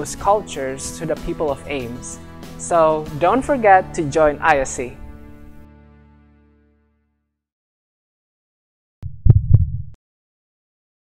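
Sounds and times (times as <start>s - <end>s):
heavy low thumps: 9.0s - 10.0s.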